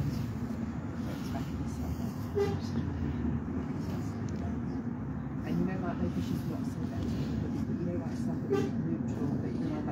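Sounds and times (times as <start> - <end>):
bus engine drone: 0.0 - 9.9.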